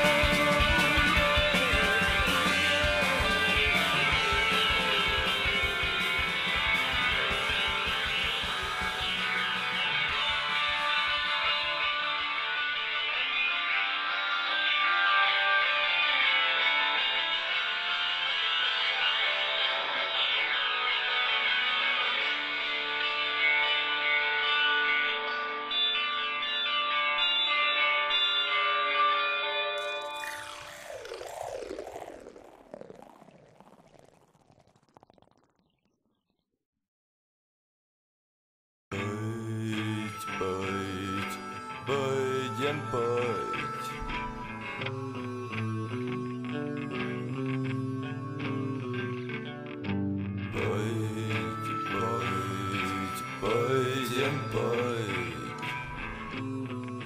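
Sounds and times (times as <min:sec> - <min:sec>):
rock band music: 0:00.0 - 0:32.6, 0:38.9 - 0:57.0
falling swooping sound: 0:29.8 - 0:35.7.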